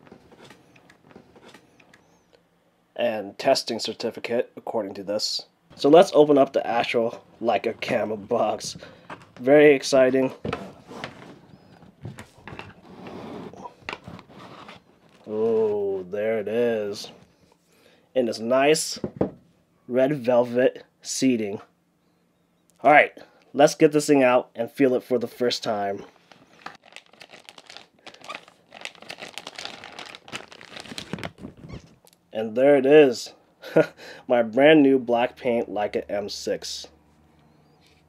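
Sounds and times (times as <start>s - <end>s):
cardboard lid sliding: 12.1s - 14.9s
plastic bag crinkling: 26.2s - 32.2s.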